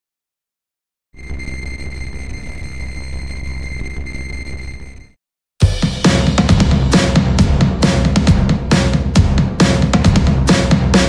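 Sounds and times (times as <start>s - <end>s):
thin high whine: 1.2s - 5.2s.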